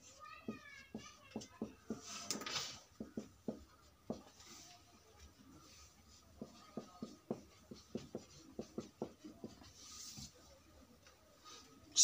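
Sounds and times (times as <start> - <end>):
marker writing on whiteboard: 0.0 - 10.5.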